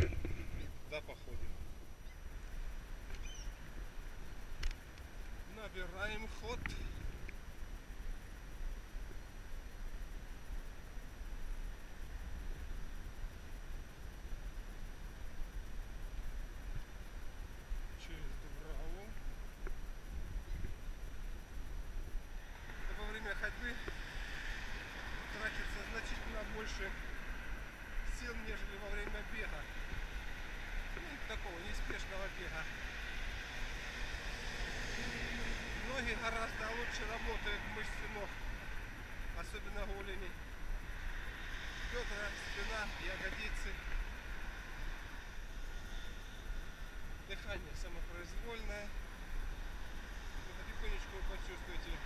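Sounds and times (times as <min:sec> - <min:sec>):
faint hiss: 0:00.0 - 0:52.0
wind rumble on microphone: 0:00.0 - 0:52.0.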